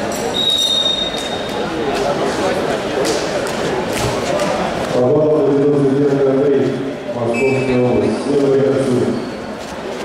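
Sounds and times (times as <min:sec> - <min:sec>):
echoing chatter of many voices: 0:00.0 - 0:10.0.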